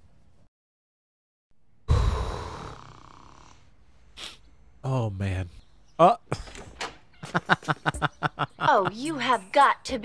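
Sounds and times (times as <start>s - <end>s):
loud snore: 1.9s - 4.4s.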